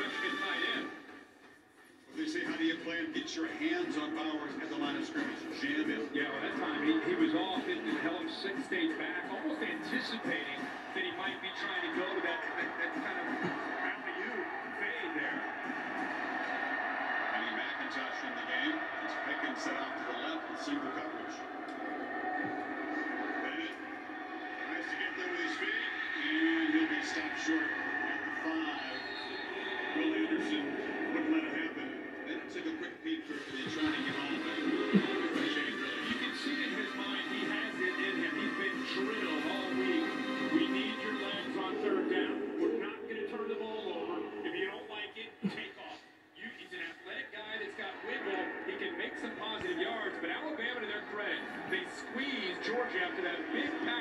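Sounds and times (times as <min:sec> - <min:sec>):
stadium crowd noise on tv: 0:00.0 - 0:54.0
faint commentator voices: 0:02.0 - 0:54.0.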